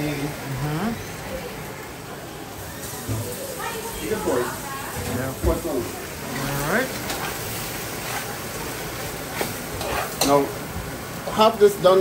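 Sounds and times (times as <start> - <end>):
sausage sizzling in a pan: 0.0 - 12.0
spoon scraping a pot: 9.3 - 10.4.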